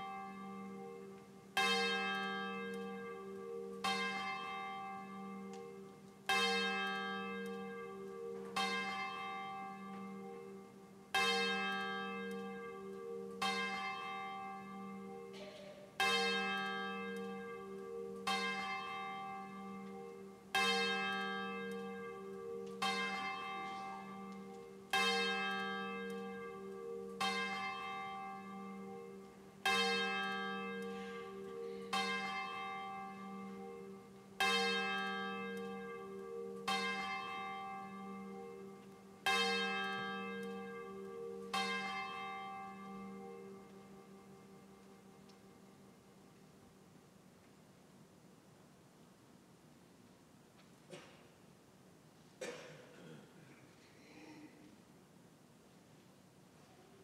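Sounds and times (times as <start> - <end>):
church bell tolling: 0.0 - 46.3.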